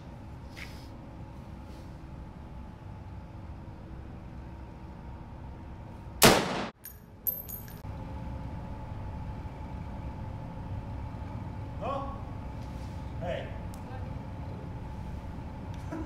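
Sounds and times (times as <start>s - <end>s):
rifle shot: 6.2s - 6.8s
high metallic clinks: 6.8s - 7.8s.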